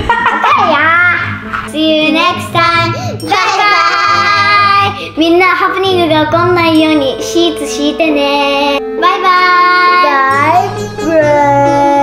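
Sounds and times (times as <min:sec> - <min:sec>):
backing music: 0:00.0 - 0:12.0
child singing: 0:02.1 - 0:12.0.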